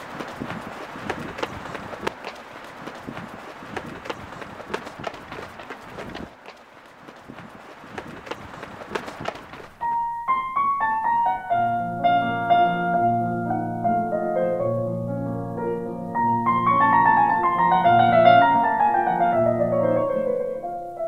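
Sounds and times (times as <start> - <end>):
footsteps running on pavement: 0.0 - 9.8
steady background hiss: 0.0 - 21.0.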